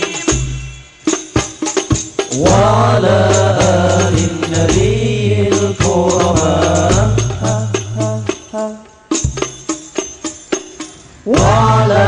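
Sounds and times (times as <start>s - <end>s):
frame drums with jingles: 0.0s - 12.0s
men singing together: 2.3s - 9.1s, 11.3s - 12.0s.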